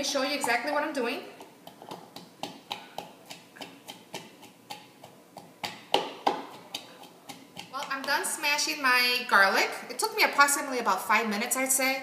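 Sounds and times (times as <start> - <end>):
wooden pestle pounding in mortar: 1.3 - 8.4.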